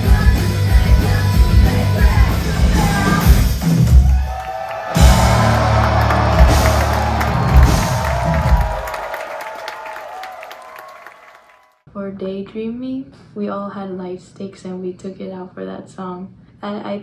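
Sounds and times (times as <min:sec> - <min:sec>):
live rock band playing: 0:05.0 - 0:08.7.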